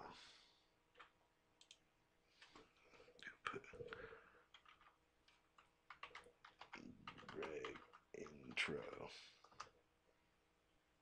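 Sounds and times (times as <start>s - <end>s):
soft clicks: 1.0s - 1.8s
faint whispered voice: 3.1s - 4.3s, 6.7s - 9.7s.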